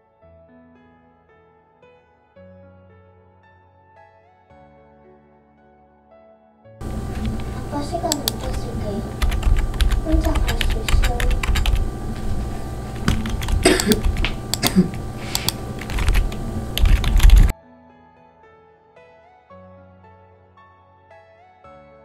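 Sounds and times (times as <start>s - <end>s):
keyboard typing and clicking: 6.8s - 17.5s
person laughing: 13.6s - 15.1s.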